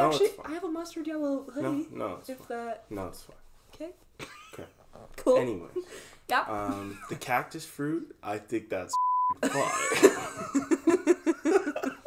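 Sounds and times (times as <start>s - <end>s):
censor bleep: 8.9s - 9.4s
people laughing: 9.4s - 12.0s.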